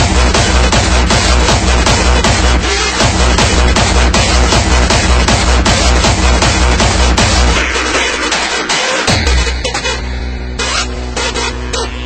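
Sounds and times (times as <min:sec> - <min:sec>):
hardstyle electronic dance music: 0:00.0 - 0:12.0
heavy distorted kick drum: 0:00.0 - 0:12.0.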